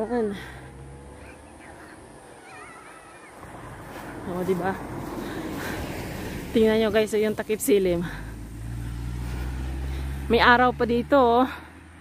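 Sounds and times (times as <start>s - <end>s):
car driving past: 0.4s - 2.0s, 3.4s - 12.0s.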